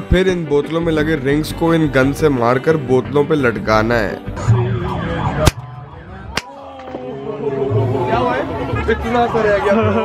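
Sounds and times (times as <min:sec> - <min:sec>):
background music: 0:00.0 - 0:10.0
people chattering: 0:04.5 - 0:10.0.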